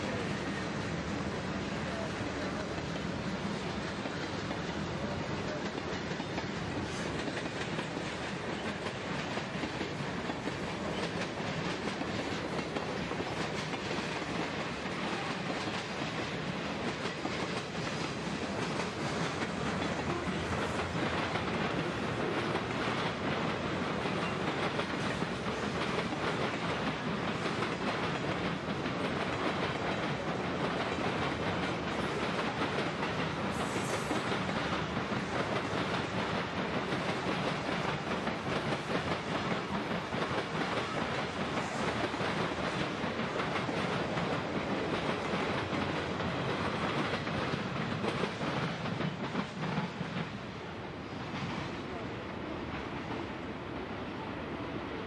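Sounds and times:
train wheels rumbling on rail: 0.0 - 55.0
wheels clacking over rail joints: 1.9 - 50.4.

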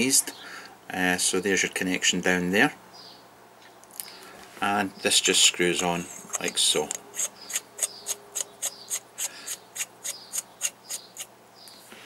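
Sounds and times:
metal cap screwing rasps: 6.2 - 11.3.

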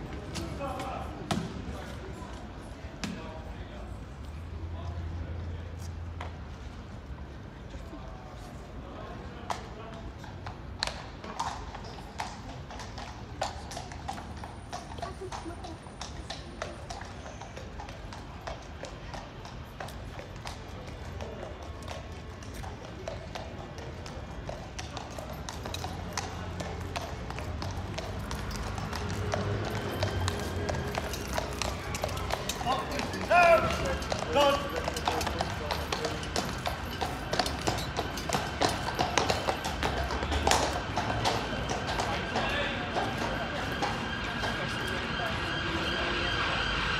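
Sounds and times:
hooves clip-clopping on road: 0.0 - 45.6.

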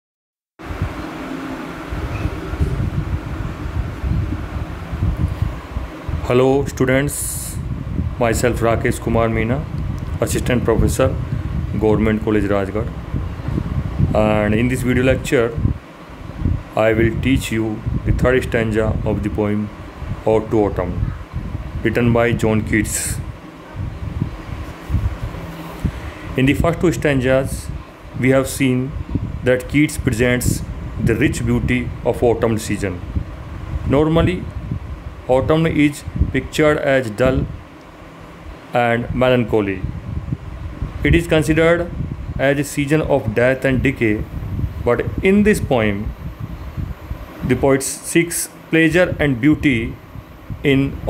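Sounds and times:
low rumbling background noise: 0.6 - 51.0
room noise: 0.6 - 51.0.

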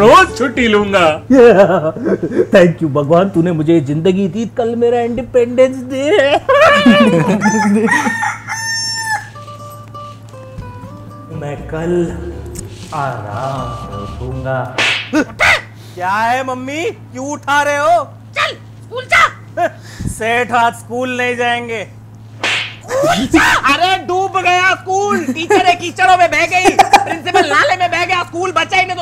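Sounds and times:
person laughing: 1.3 - 2.5, 6.1 - 8.3, 15.1 - 15.4, 22.8 - 23.4, 25.0 - 25.7, 26.6 - 27.6
rooster crowing: 6.7 - 9.5
person exclaiming: 22.8 - 24.0.

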